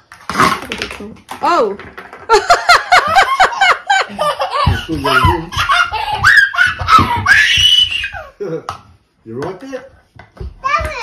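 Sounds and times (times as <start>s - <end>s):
child and family laughing: 2.3s - 7.6s.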